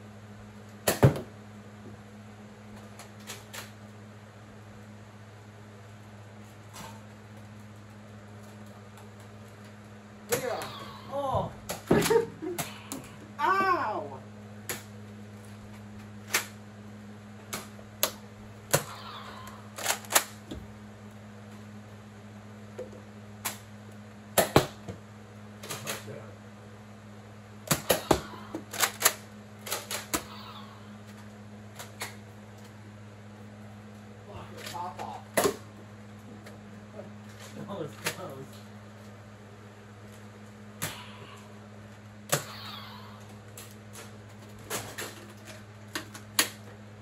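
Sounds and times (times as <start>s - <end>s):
foam darts striking objects: 24.3s - 24.9s.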